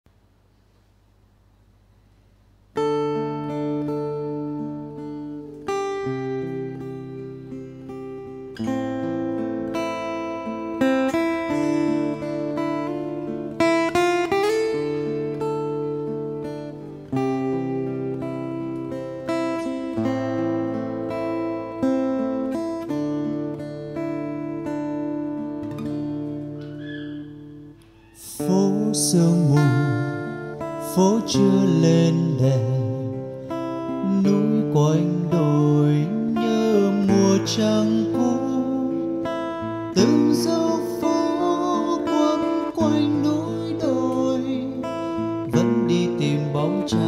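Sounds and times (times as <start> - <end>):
acoustic guitar playing: 0.5 - 47.0.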